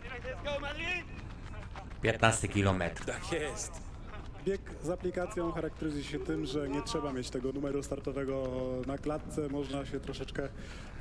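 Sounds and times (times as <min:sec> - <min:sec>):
race broadcast: 0:00.0 - 0:11.0.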